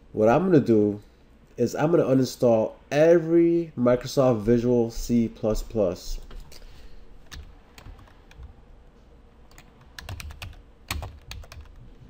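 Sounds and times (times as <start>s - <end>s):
typing on a computer keyboard: 7.2s - 8.5s, 9.5s - 11.8s.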